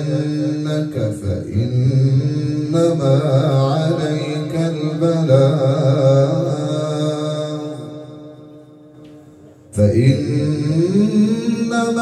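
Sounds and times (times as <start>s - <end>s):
man reciting in melodic chant: 0.0s - 12.0s.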